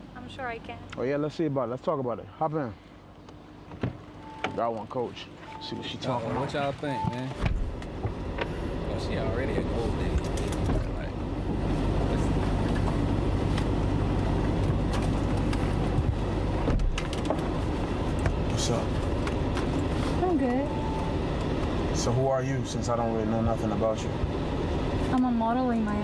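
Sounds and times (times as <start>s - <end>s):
air conditioning blowing: 0.0s - 26.0s
car cabin noise: 3.6s - 26.0s.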